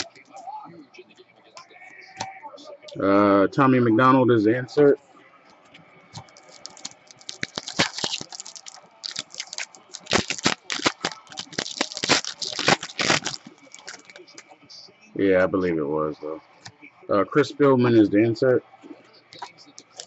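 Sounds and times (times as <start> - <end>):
foil wrapper crinkling and tearing: 6.2 - 14.4, 19.4 - 20.0.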